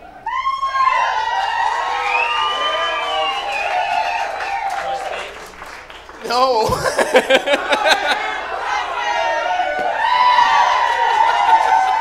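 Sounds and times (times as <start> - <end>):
audience whooping and hollering: 0.0 - 5.5, 6.2 - 12.0.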